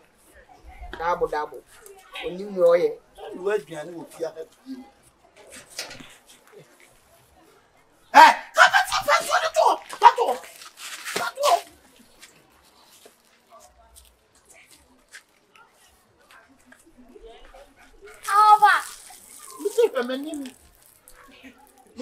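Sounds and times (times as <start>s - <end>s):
voices exclaiming: 8.1s - 11.7s, 18.1s - 20.5s
water splashing on ground: 18.2s - 21.8s.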